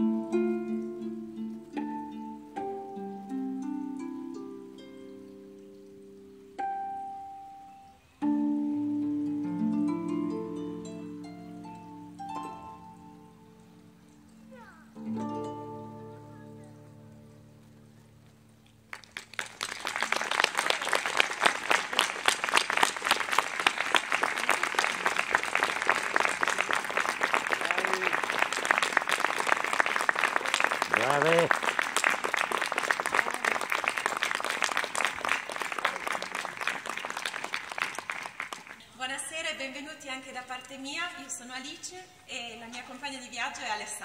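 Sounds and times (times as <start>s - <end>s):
harp chord: 6.6s - 17.6s
audience clapping: 18.9s - 38.8s.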